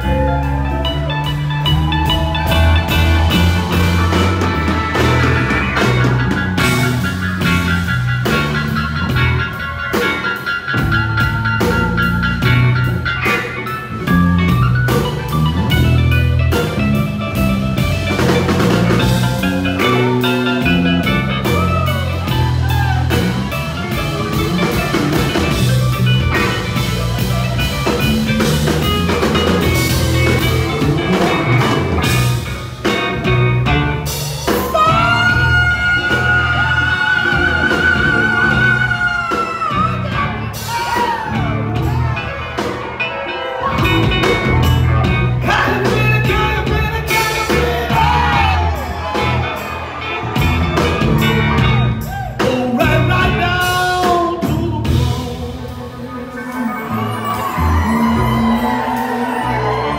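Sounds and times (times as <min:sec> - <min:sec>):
bass guitar: 0:00.0 - 0:59.9
drum kit: 0:00.0 - 0:59.9
electric guitar: 0:00.0 - 0:59.9.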